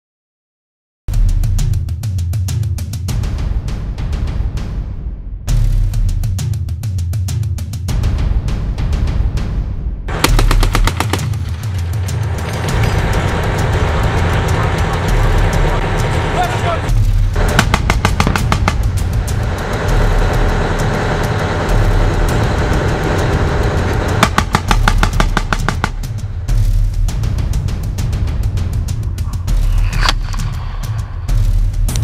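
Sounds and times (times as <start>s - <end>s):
background music with steady beat: 1.1s - 32.0s
automatic gunfire bursts: 10.1s - 11.5s, 17.4s - 18.9s, 24.2s - 26.1s.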